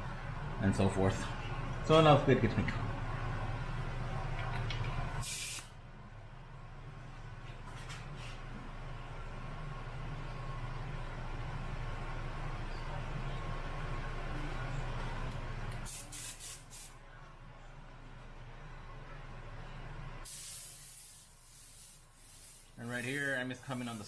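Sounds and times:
air compressor humming: 0.0 - 5.8
airbrush spraying hiss: 5.2 - 5.7, 15.8 - 17.0, 20.2 - 24.0.

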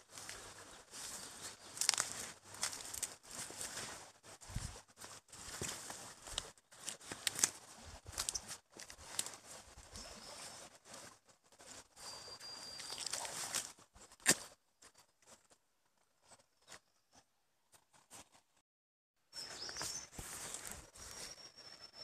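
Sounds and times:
footsteps crunching on dry leaves: 0.0 - 11.1, 12.7 - 14.4, 19.4 - 21.3
vegetation brushing: 0.0 - 14.5.

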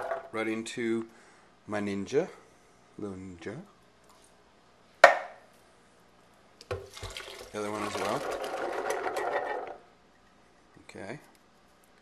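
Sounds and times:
loud knock of hard objects: 5.0 - 5.4.

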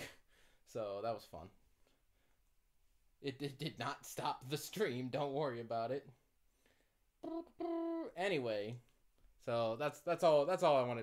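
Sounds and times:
man humming short notes: 7.2 - 8.2.

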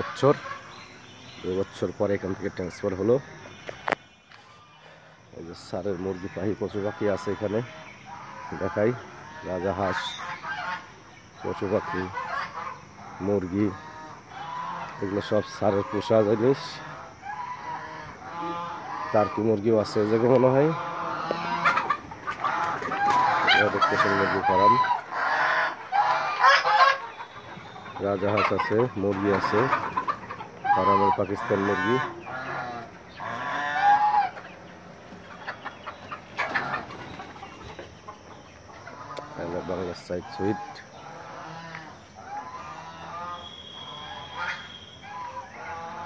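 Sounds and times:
chickens clucking: 0.0 - 46.0
hens calling: 0.0 - 46.0.

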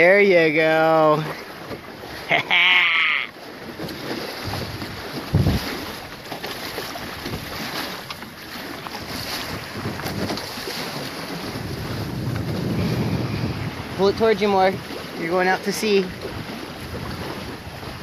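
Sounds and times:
water rushing past hulls: 0.0 - 18.0
wind buffeting microphone: 3.6 - 18.0.

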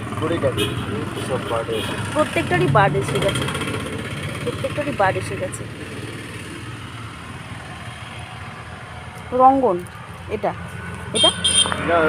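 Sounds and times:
vehicle engine running: 0.0 - 11.3.

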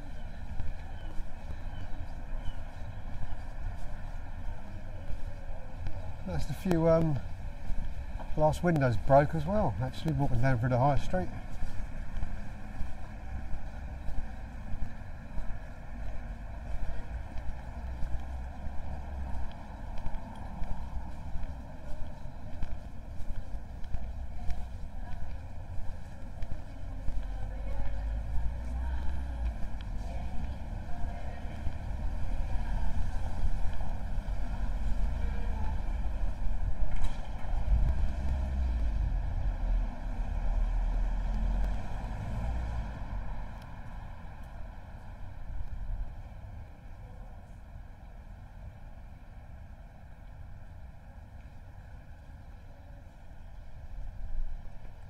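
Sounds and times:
footsteps on paving: 0.0 - 39.5
distant traffic: 0.0 - 55.0
passers-by voices: 0.0 - 55.0
wind rumble on microphone: 11.2 - 46.8.

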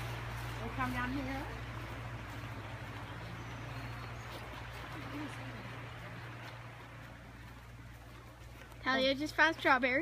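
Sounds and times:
low hum: 0.0 - 8.8
footfalls on grass: 0.0 - 9.2.

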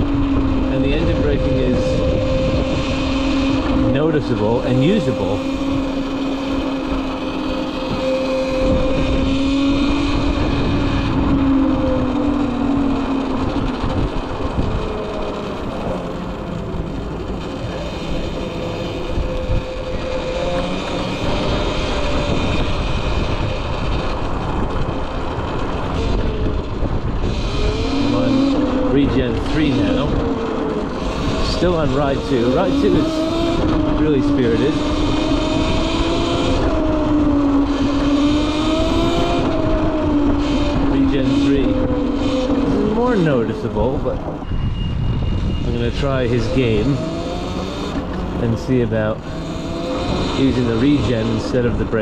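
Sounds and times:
electric motor whine: 0.0 - 52.0
wind and road noise: 0.0 - 52.0.

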